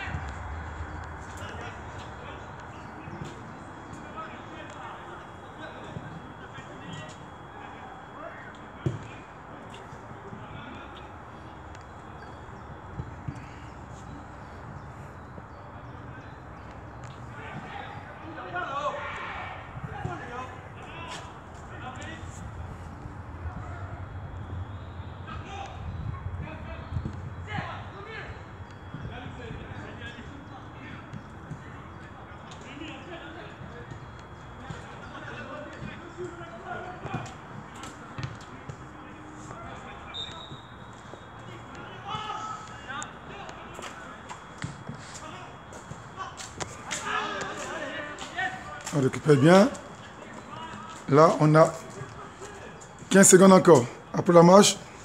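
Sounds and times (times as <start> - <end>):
footsteps on pavement: 0.0 - 5.4, 43.5 - 54.7
people talking: 0.0 - 12.4, 45.0 - 54.9.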